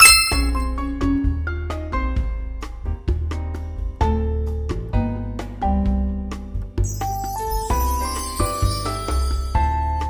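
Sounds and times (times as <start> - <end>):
bright bell-like ding: 0.0 - 0.8, 6.8 - 9.8
background music: 0.0 - 10.0.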